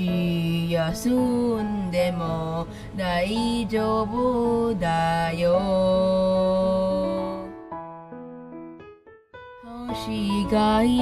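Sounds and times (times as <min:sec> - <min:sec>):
person singing: 0:00.0 - 0:07.7, 0:09.6 - 0:11.0
backing track music: 0:00.0 - 0:11.0.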